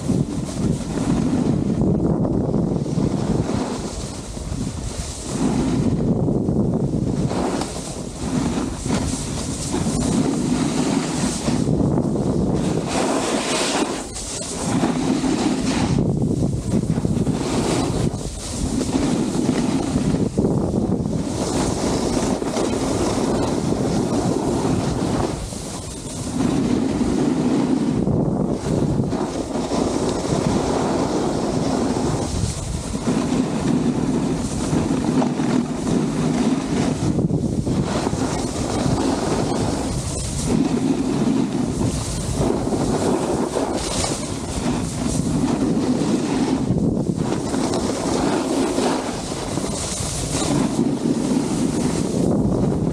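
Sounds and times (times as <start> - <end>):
snowboard scraping over snow: 0.0 - 52.9
wind buffeting microphone: 0.0 - 52.9.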